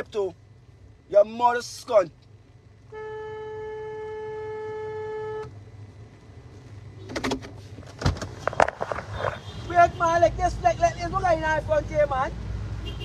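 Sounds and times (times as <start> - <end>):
car interior rumble: 0.0 - 13.0.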